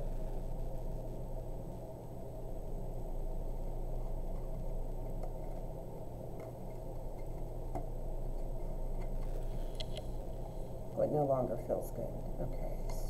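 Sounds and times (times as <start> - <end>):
low room hum: 0.0 - 13.0.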